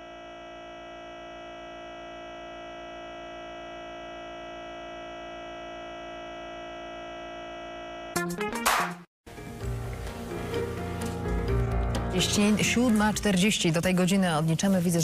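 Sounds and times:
electronic buzz with fast flutter: 0:00.0 - 0:08.2.

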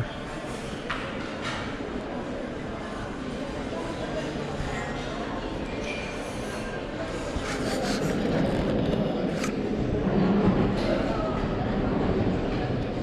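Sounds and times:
background chatter: 0:00.0 - 0:13.0.

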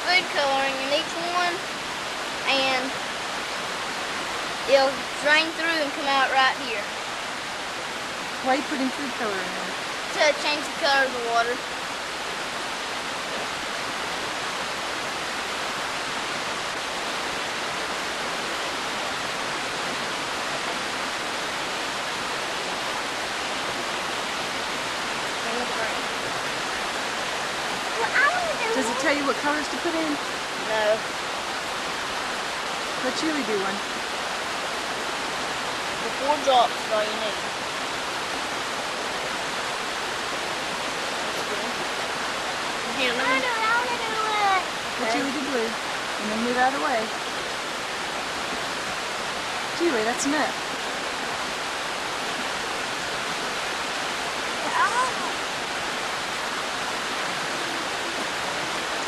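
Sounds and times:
steady hiss: 0:00.0 - 0:59.0.

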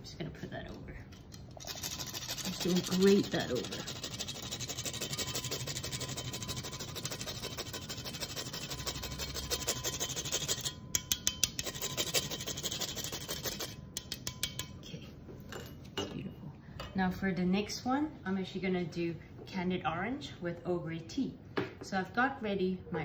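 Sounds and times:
grater scraping: 0:01.6 - 0:10.8, 0:11.5 - 0:13.8.

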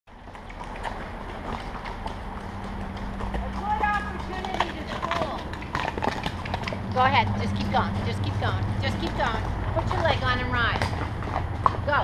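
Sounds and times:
horse hooves clip-clopping: 0:00.1 - 0:12.0.

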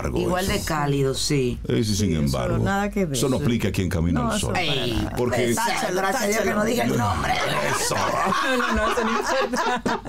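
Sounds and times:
women laughing: 0:06.9 - 0:10.0.

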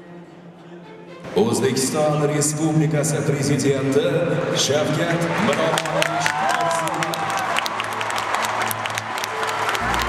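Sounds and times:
music playing: 0:00.0 - 0:02.6, 0:07.0 - 0:10.0
crowd applauding: 0:04.6 - 0:10.0.

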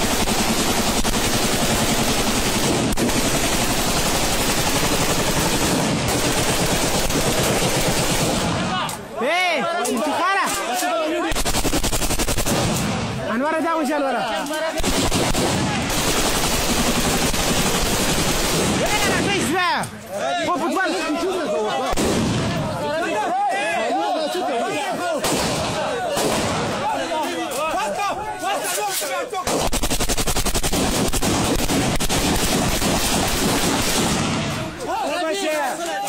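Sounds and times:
automatic gunfire: 0:00.0 - 0:08.8, 0:11.3 - 0:13.2, 0:14.8 - 0:19.4, 0:29.5 - 0:34.7
rapid sharp shots: 0:00.0 - 0:08.8, 0:11.3 - 0:13.3, 0:14.8 - 0:19.6, 0:21.9 - 0:22.6, 0:25.2 - 0:26.9, 0:29.4 - 0:34.8
voices: 0:08.3 - 0:16.0, 0:18.6 - 0:29.7, 0:34.3 - 0:36.0.

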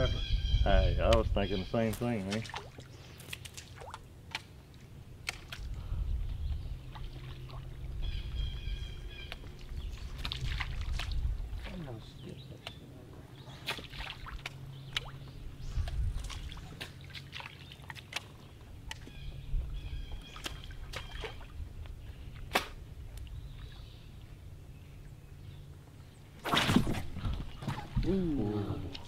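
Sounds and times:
steady low hum: 0:00.0 - 0:29.0
water dripping and lapping: 0:01.1 - 0:29.0.

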